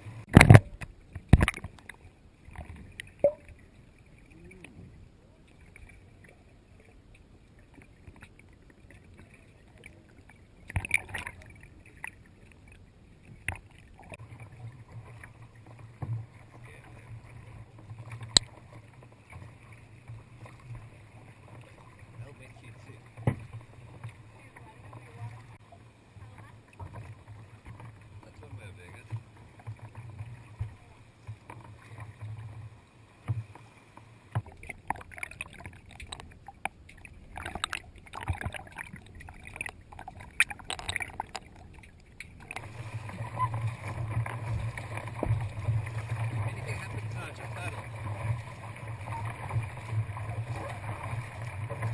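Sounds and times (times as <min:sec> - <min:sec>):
water sloshing and splashing: 0:00.0 - 0:51.9.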